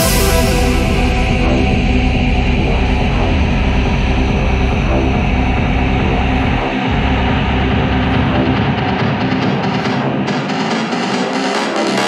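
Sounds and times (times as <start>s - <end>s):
electronic psytrance music: 0.0s - 12.0s.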